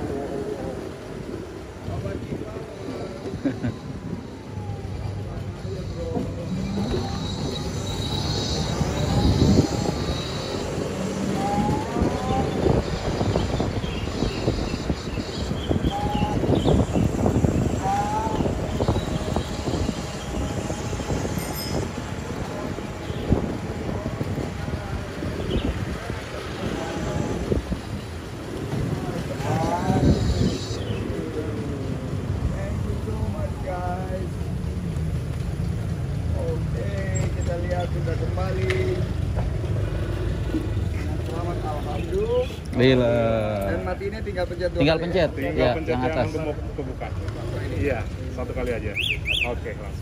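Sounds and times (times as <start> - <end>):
wind and road rumble: 0.0 - 50.0.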